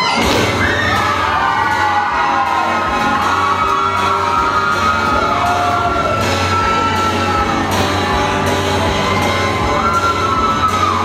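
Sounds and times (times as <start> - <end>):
audience cheering and shouting: 0.0 - 11.0.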